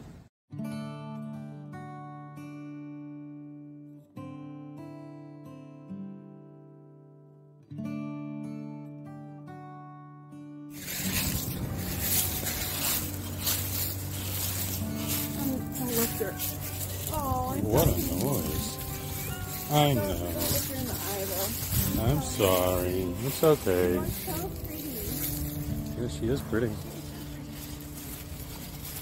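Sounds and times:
acoustic guitar chords ringing: 0.5s - 29.0s
loud rustling crackling noise: 10.8s - 29.0s.

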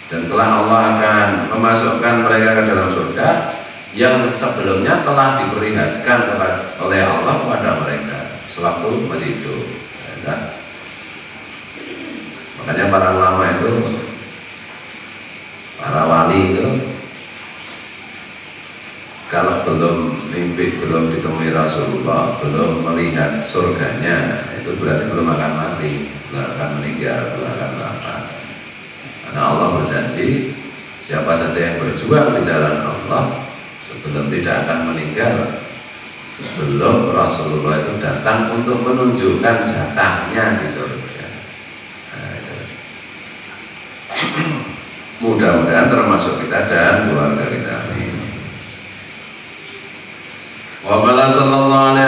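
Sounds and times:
low room noise: 0.0s - 52.0s
recording hiss: 0.0s - 52.0s.

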